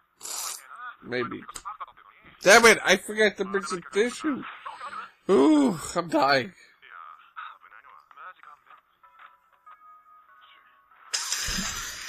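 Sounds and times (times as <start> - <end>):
faint background music: 0.0 - 12.0
man blowing his nose: 0.2 - 0.6, 11.2 - 12.0.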